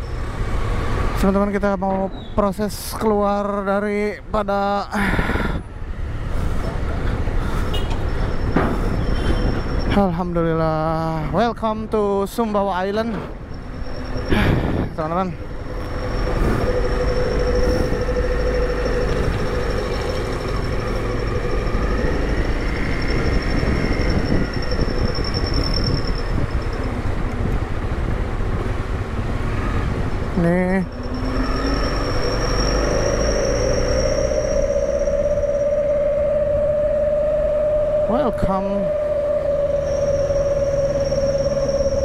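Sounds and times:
wind rumble on microphone: 0:05.0 - 0:11.9, 0:13.0 - 0:42.0
steady whine: 0:13.2 - 0:27.7, 0:30.4 - 0:42.0.

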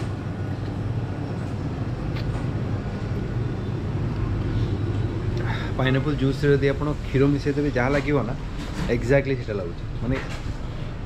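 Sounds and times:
cooling equipment humming: 0:00.0 - 0:11.0.

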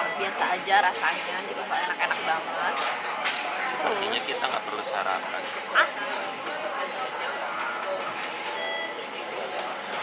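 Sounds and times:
diners chattering: 0:00.0 - 0:10.0
short electronic beep: 0:08.5 - 0:09.0.

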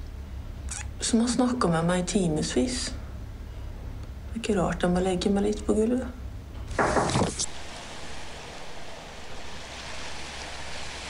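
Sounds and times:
hand knocking camera: 0:06.8 - 0:07.4
wind and sea hiss: 0:06.8 - 0:11.0.

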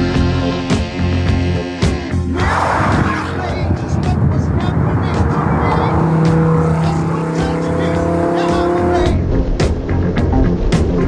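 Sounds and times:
car engines running: 0:02.2 - 0:09.3.

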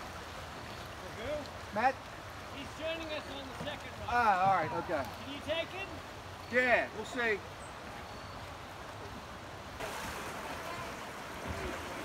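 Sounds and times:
creek water flowing: 0:00.0 - 0:12.0.

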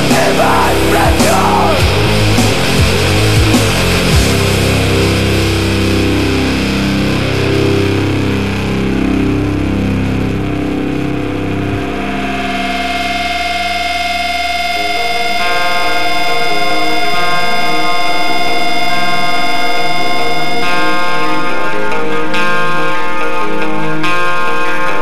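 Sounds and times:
heavy rock band: 0:00.0 - 0:25.0
ringing guitar tone: 0:00.0 - 0:25.0.

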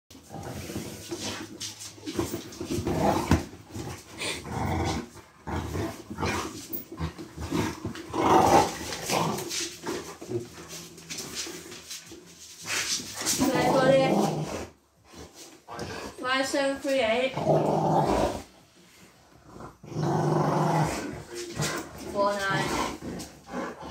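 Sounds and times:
dog grumbling growls: 0:02.8 - 0:09.6, 0:13.4 - 0:14.8, 0:17.3 - 0:18.6, 0:19.4 - 0:23.9.

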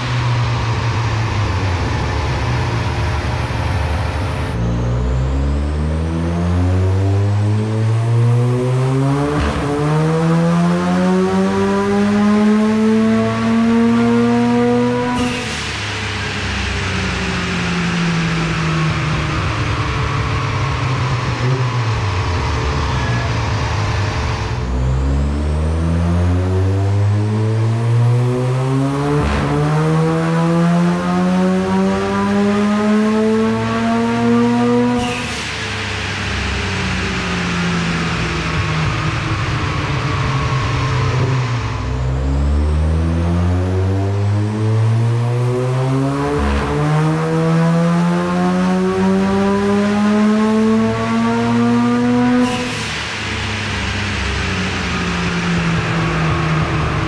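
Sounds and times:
rotary engine revving: 0:00.0 - 0:57.0.

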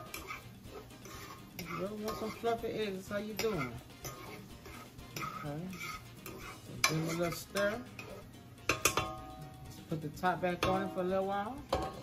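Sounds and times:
fork scraping and clinking on pan: 0:00.0 - 0:09.7, 0:11.7 - 0:12.0.

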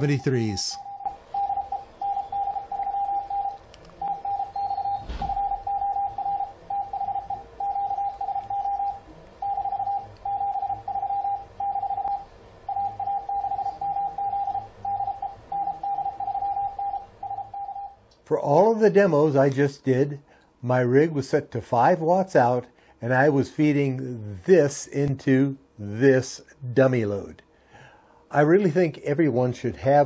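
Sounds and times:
morse code tone: 0:00.0 - 0:18.0.

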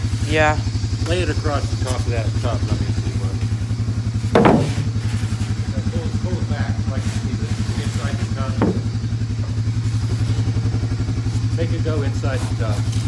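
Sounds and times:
small engine idling: 0:00.0 - 0:13.0.

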